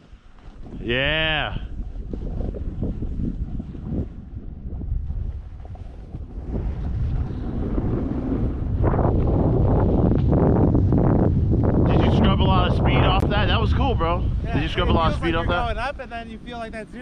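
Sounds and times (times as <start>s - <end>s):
wind rushing over microphone: 0.0s - 17.0s.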